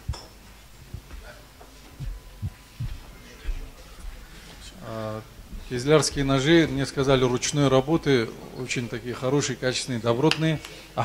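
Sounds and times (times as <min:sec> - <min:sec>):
footsteps on stage floor: 0:00.0 - 0:07.2
faint hum: 0:00.0 - 0:11.0.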